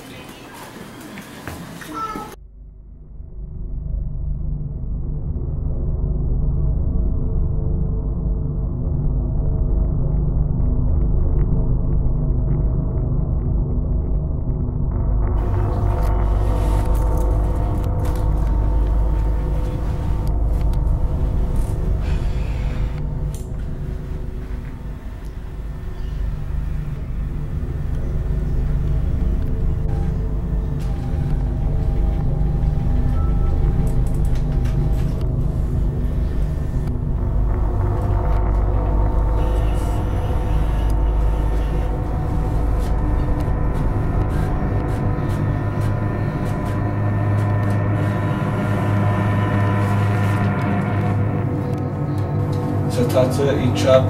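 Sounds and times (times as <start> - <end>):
low rumbling drone: 2.3 - 54.0
steady low hum: 2.3 - 54.0
held ominous tones: 14.6 - 54.0.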